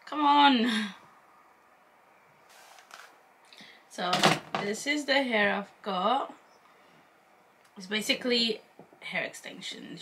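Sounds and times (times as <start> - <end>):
faint rustle: 2.5 - 3.2.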